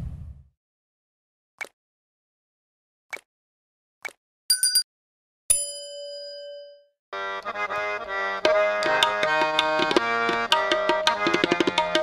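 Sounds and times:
notification bell ding: 0:04.5 - 0:04.9, 0:05.5 - 0:06.9
harmonium music: 0:07.1 - 0:12.0.

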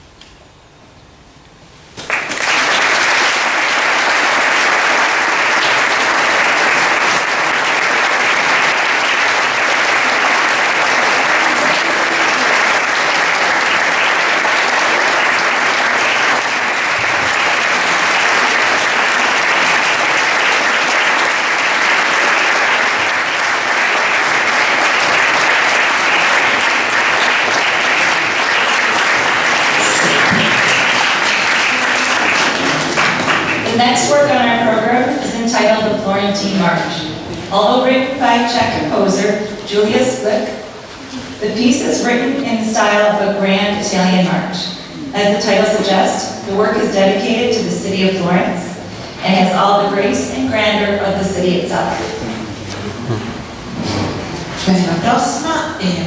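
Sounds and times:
audience applauding: 0:02.0 - 0:34.2.

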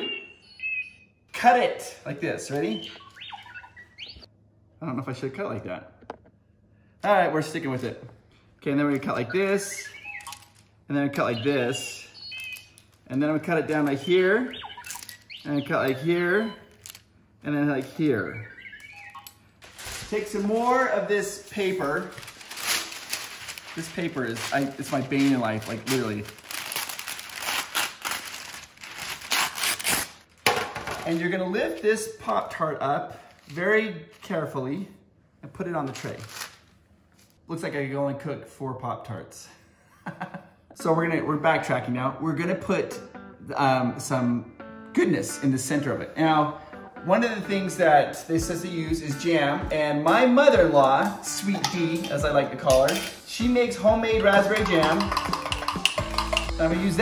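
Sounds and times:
electronic droid chirps: 0:00.0 - 0:01.1, 0:02.7 - 0:04.2, 0:09.3 - 0:10.6, 0:12.1 - 0:12.8, 0:14.0 - 0:15.6, 0:16.2 - 0:16.8, 0:18.2 - 0:19.5
paper crinkling and rustling: 0:16.7 - 0:17.0, 0:19.6 - 0:31.4, 0:35.8 - 0:37.4.

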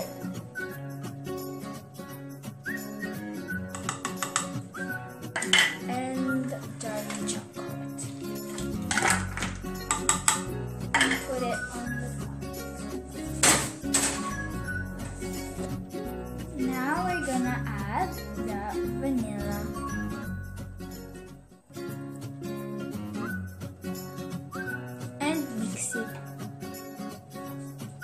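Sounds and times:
background music: 0:00.0 - 0:28.0
saucepan and utensils clinking: 0:03.7 - 0:04.7, 0:05.3 - 0:05.9, 0:06.9 - 0:11.9.

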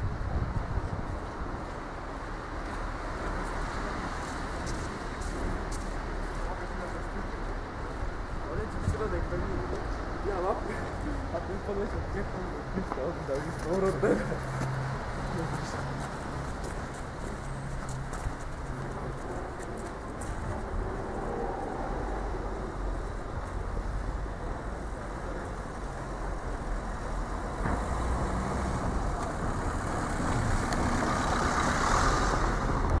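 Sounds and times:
passing cars rumbling: 0:00.0 - 0:33.0.

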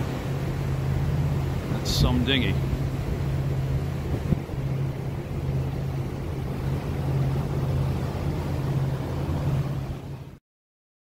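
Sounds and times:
wind noise: 0:00.0 - 0:10.3
motorboat engine hum: 0:00.0 - 0:10.4
water noise: 0:00.0 - 0:10.4.

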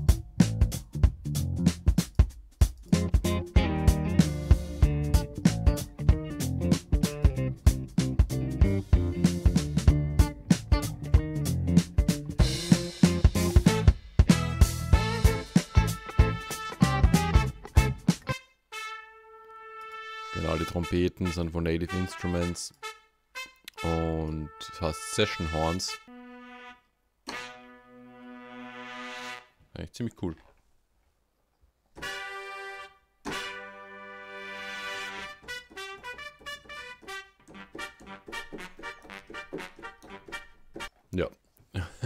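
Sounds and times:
rhythmic music: 0:00.0 - 0:19.1, 0:32.0 - 0:41.0
trumpet holding long note: 0:14.4 - 0:17.6, 0:18.7 - 0:21.0, 0:21.9 - 0:29.6, 0:32.0 - 0:40.2.

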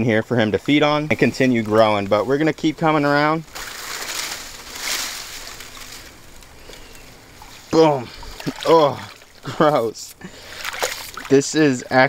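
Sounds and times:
water sloshing and splashing: 0:03.5 - 0:11.6.

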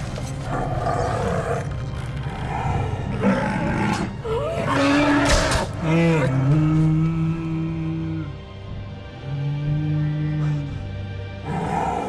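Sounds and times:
orchestral score: 0:00.0 - 0:12.0.

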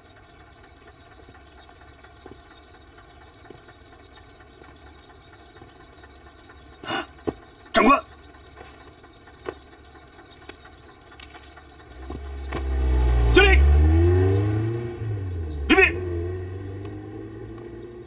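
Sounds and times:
jeep engine pulling up: 0:00.0 - 0:18.0.

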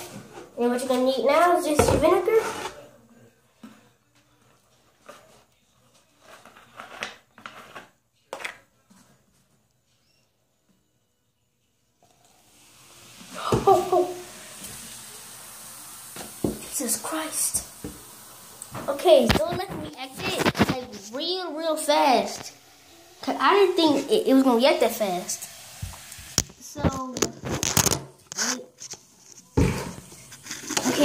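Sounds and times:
fizzing hiss of foaming mixture: 0:12.0 - 0:27.0
crackling rubs on microphone: 0:19.3 - 0:21.2, 0:26.8 - 0:29.6.

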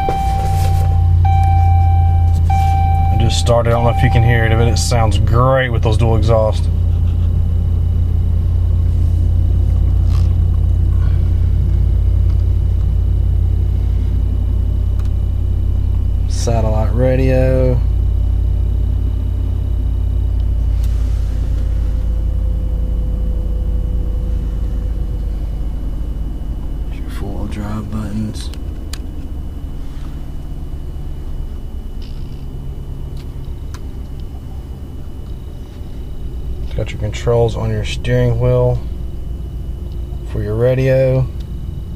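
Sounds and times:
truck engine starting and idling: 0:00.0 - 0:41.9.

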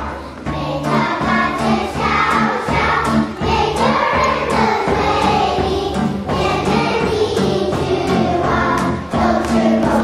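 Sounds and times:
backing music with bass notes: 0:00.0 - 0:10.0
children singing together: 0:00.0 - 0:10.0.

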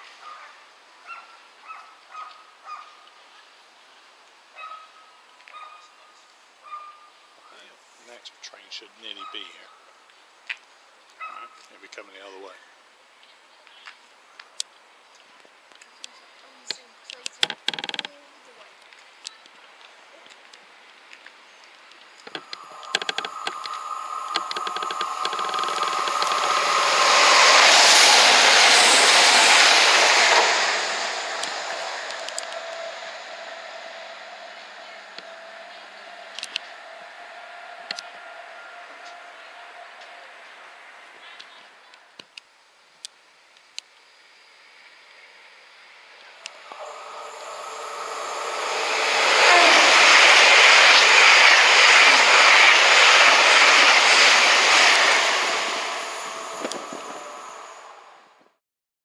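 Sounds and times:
diesel train passing: 0:22.1 - 0:42.2, 0:44.7 - 0:58.6
sharp clicks: 0:22.2 - 0:27.6
train running past: 0:22.2 - 0:42.2, 0:45.7 - 0:58.6.

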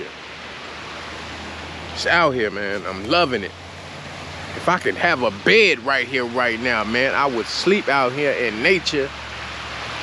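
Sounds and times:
river water flowing: 0:00.0 - 0:10.0.

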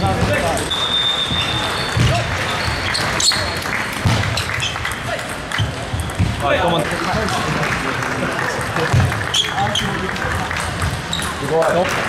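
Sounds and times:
chatter of players and spectators: 0:00.0 - 0:12.0
ball clicking off bats and table: 0:02.0 - 0:07.5.

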